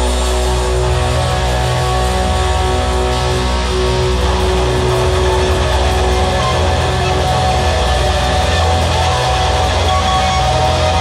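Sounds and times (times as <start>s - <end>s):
electric guitar with effects: 0.0s - 11.0s
steady low bass: 0.0s - 11.0s.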